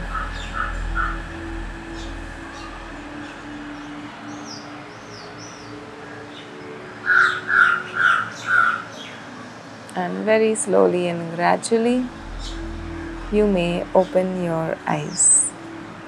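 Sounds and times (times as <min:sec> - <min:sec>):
small bird whistling: 0:00.0 - 0:09.2
crow cawing: 0:07.0 - 0:08.8
faint steady low tone: 0:11.2 - 0:15.6.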